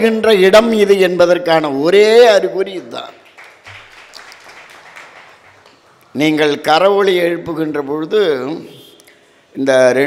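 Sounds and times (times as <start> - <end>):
audience applause: 3.3 - 6.0.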